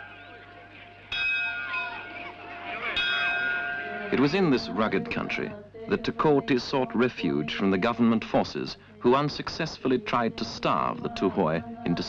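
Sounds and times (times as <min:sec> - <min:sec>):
bell ringing: 0:00.0 - 0:04.9.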